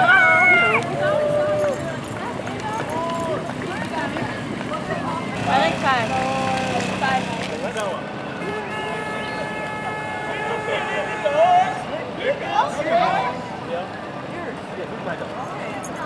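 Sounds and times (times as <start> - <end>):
spectators talking and calling out: 0.0 - 16.0
steady high held tone: 5.4 - 7.9.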